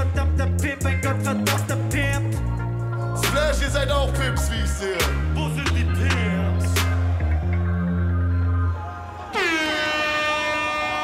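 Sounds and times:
air horn blast: 0:09.2 - 0:11.0.

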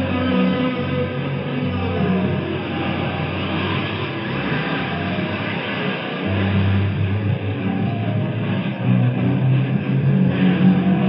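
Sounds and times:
heavy rock band distorted sound: 0:00.0 - 0:11.0.

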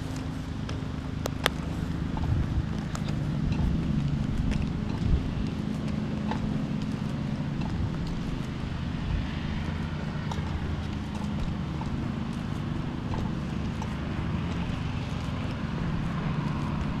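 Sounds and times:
footsteps on concrete: 0:00.0 - 0:17.0
wind rumble on microphone: 0:00.0 - 0:17.0.

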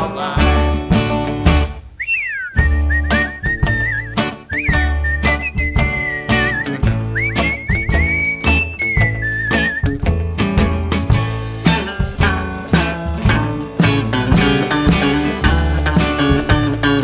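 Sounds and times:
strummed acoustic guitar: 0:00.0 - 0:01.9, 0:02.6 - 0:17.0
upright bass: 0:00.0 - 0:02.0, 0:02.6 - 0:17.0
whistled melody: 0:02.0 - 0:10.2.

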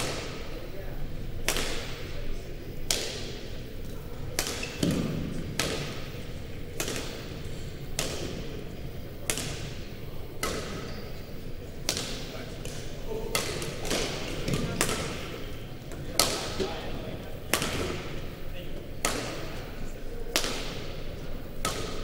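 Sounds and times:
rackets hitting shuttlecock: 0:00.0 - 0:00.6, 0:01.4 - 0:22.0.

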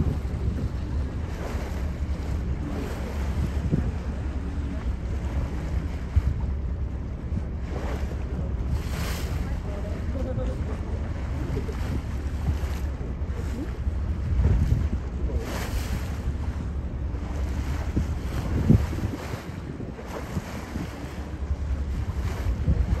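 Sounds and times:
choppy water wash: 0:00.0 - 0:23.0
wind buffeting microphone: 0:00.0 - 0:23.0.

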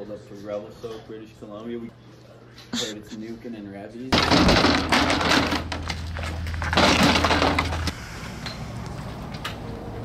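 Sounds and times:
skis and poles clattering: 0:04.2 - 0:07.9.

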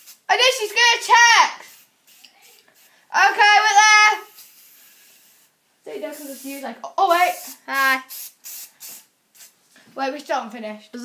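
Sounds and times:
aerosol spray hissing: 0:00.0 - 0:00.3, 0:01.5 - 0:09.6.

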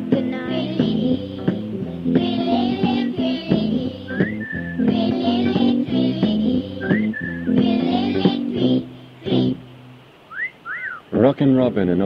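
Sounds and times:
whistled chirps: 0:04.1 - 0:04.9, 0:06.8 - 0:07.5, 0:10.3 - 0:11.1
man talking: 0:11.1 - 0:12.0.

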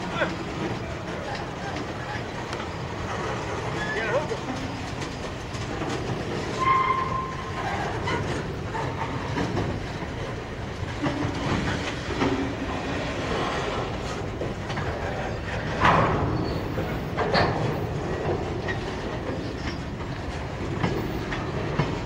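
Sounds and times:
freight train wheels rumbling: 0:00.0 - 0:22.0
wheels clicking over rail joints: 0:00.0 - 0:22.0
metallic wheel squeals: 0:06.5 - 0:08.9, 0:16.3 - 0:16.8.

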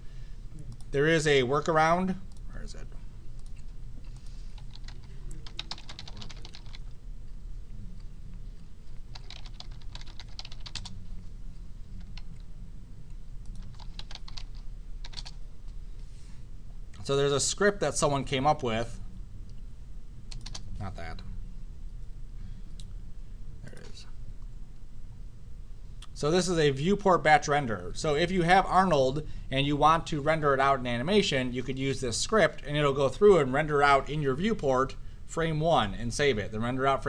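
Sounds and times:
steady low hum: 0:00.0 - 0:37.0
typing on computer keyboard: 0:04.6 - 0:06.8, 0:09.1 - 0:10.9, 0:13.5 - 0:15.4, 0:20.3 - 0:20.6.

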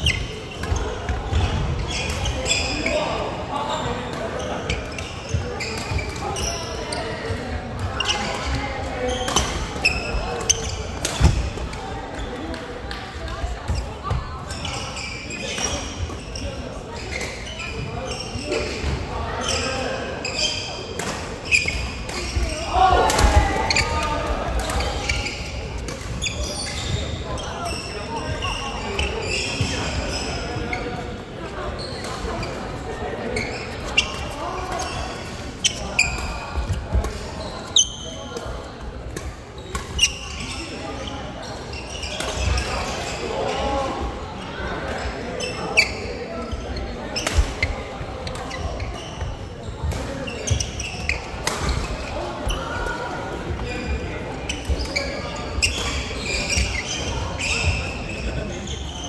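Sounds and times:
voices in hall: 0:00.0 - 0:59.0.

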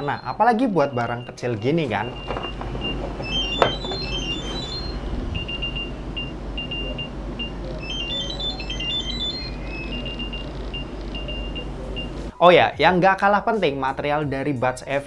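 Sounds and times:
electronic chirp runs: 0:00.0 - 0:12.2
short high beeps: 0:02.0 - 0:12.1.

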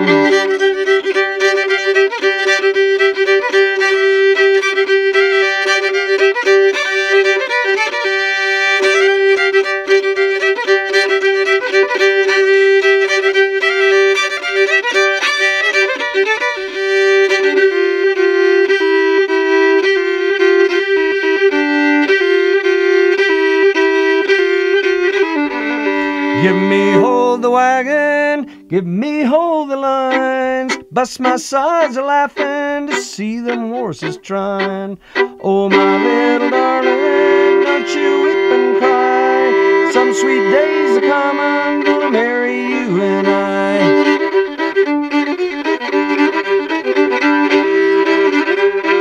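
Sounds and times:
fiddle playing with drone: 0:00.0 - 0:49.0.

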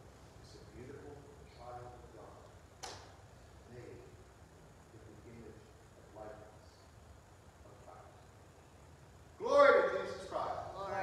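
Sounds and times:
sharp click: 0:02.8 - 0:03.2.

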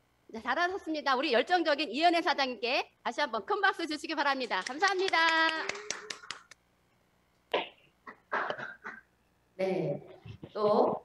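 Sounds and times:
quick hand claps: 0:04.4 - 0:06.6.

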